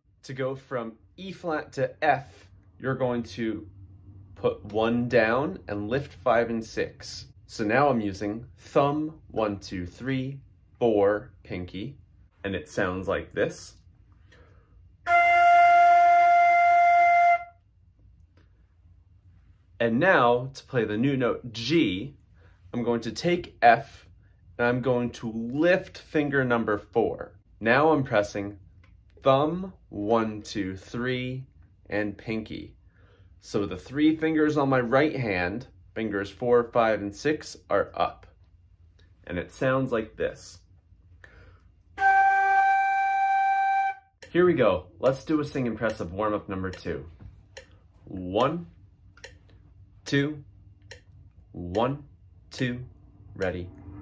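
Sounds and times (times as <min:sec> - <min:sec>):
faint breath: 0:14.1 - 0:14.8, 0:32.8 - 0:33.4, 0:41.2 - 0:41.8
flute holding a note: 0:15.1 - 0:17.6, 0:42.0 - 0:44.2.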